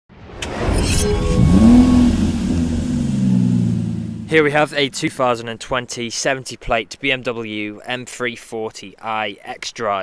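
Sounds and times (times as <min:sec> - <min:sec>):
car engine revving and idling: 0:01.3 - 0:05.4.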